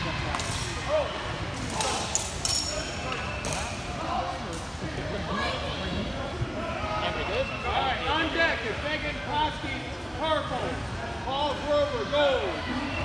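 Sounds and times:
distant voices babble in hall: 0:00.0 - 0:13.0.

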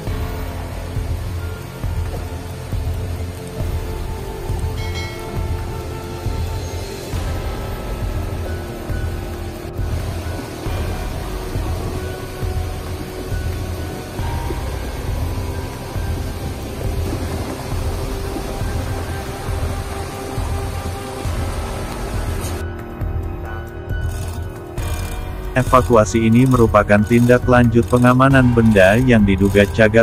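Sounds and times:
background music with low beat: 0:00.0 - 0:30.0.

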